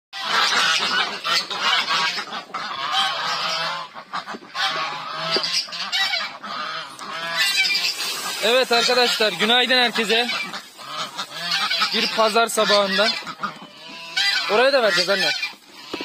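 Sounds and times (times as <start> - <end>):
ducks quacking: 0.1 - 16.0
geese honking: 0.2 - 16.0.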